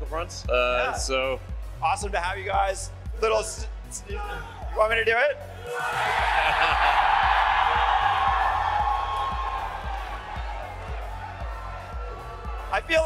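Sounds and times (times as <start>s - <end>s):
crowd cheering and whooping: 5.6s - 13.0s
music with bass beat: 5.8s - 13.0s.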